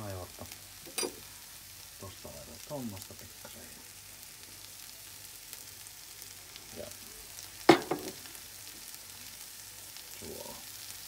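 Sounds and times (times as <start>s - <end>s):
food sizzling in frying pan: 0.0s - 11.0s.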